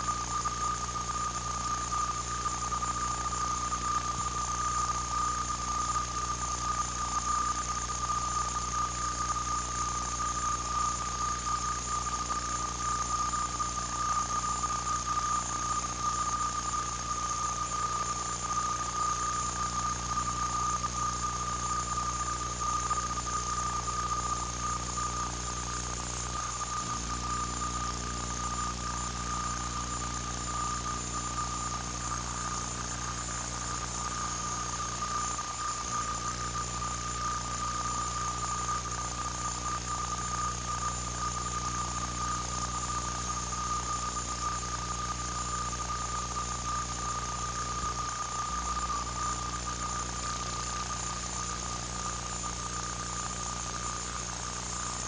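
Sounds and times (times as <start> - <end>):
high-pitched electronic whine: 0.0 - 55.0
low electrical hum: 0.0 - 55.0.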